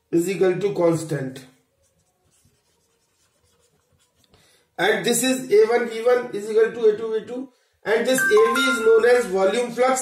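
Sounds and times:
marker pen on whiteboard: 1.4 - 6.5.

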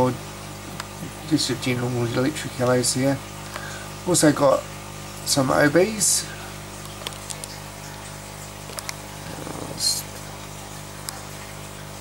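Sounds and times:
aquarium equipment humming: 0.0 - 12.0.

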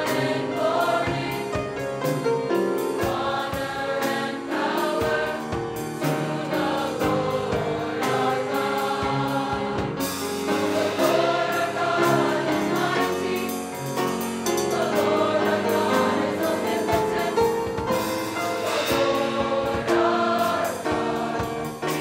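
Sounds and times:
choir singing in parts: 0.0 - 22.0.

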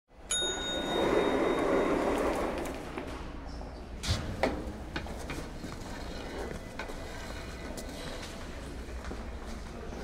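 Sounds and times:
lift arrival chime: 0.3 - 2.6
lift doors sliding open: 0.8 - 3.2.

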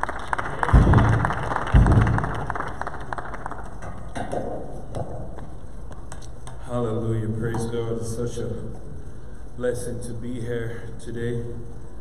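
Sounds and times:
audience clapping: 0.0 - 4.5.

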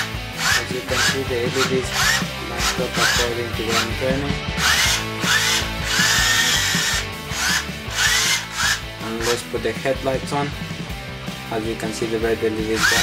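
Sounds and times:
robot motors whirring: 0.0 - 9.4, 12.7 - 13.0
music: 0.0 - 13.0.

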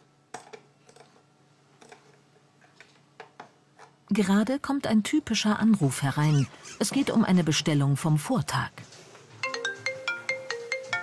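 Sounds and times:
melodic phone ringtone: 9.4 - 11.0.

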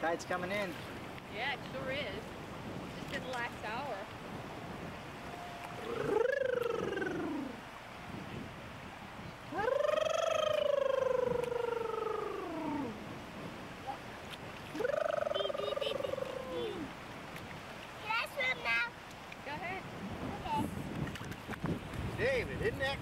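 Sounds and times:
child's drawn-out wordless calls: 14.8 - 16.9.

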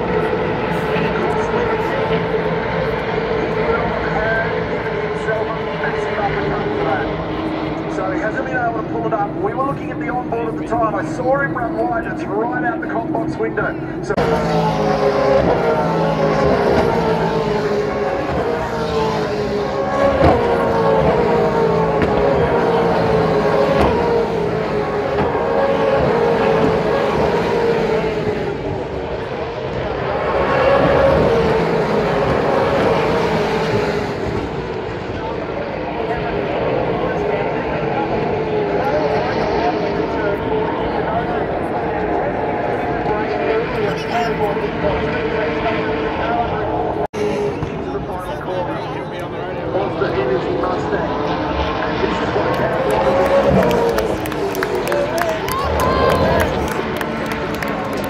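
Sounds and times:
race car engines passing: 0.0 - 58.0.

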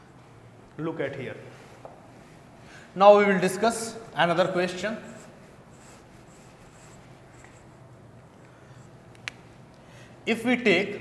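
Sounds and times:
duster wiping whiteboard: 4.2 - 7.8.

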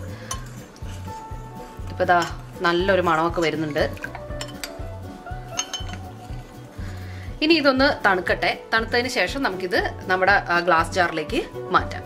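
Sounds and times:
spoon clinking in glass cup: 0.2 - 1.0, 3.3 - 6.6.

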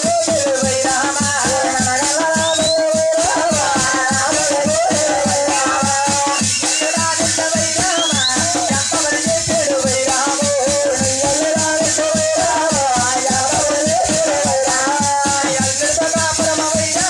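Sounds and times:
hand cymbals and ankle bells jingling: 0.0 - 17.0.

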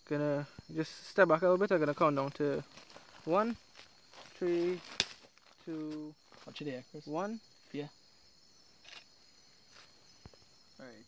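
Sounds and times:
crickets chirping: 0.0 - 11.0.

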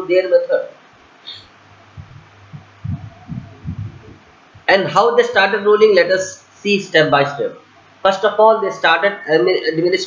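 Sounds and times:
low electrical hum: 0.0 - 10.0
soft low thumps: 1.8 - 4.7.

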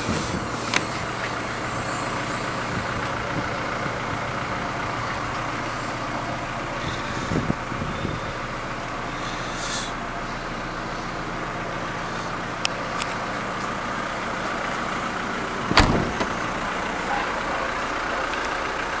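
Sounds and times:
diesel engine idling: 0.0 - 19.0
tailgate shutting thump: 15.7 - 16.4.

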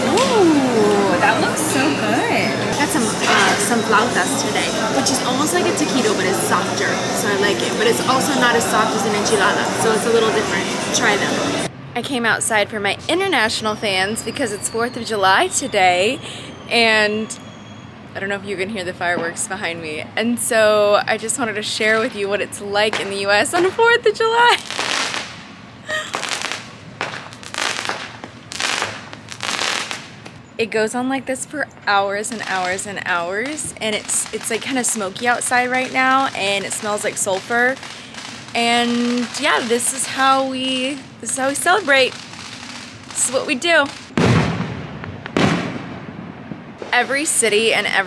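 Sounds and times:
fireworks bangs and crackle: 22.0 - 30.4, 32.2 - 48.0
firework bang: 24.6 - 30.4, 41.9 - 47.3.

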